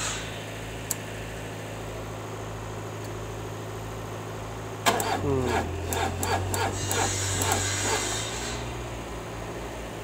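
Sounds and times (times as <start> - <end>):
car engine idling: 0.4 - 10.0.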